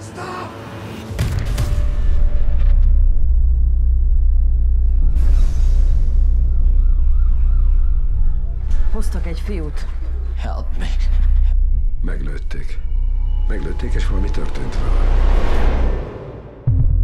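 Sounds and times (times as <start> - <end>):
deep bass rumble: 1.9 - 17.0
wavering siren-like tone: 6.0 - 9.9, 11.6 - 15.2.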